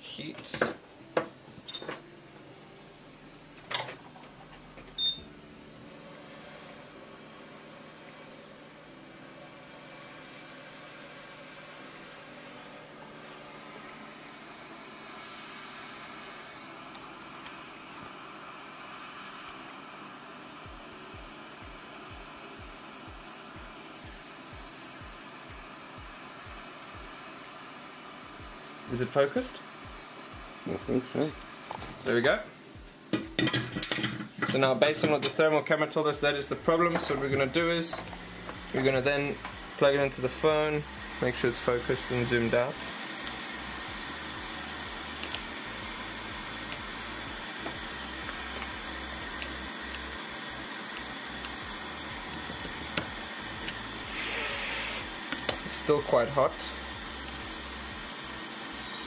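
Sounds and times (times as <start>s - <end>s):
hot air blower blowing: 0.0s - 59.0s
short beep: 5.0s - 5.3s.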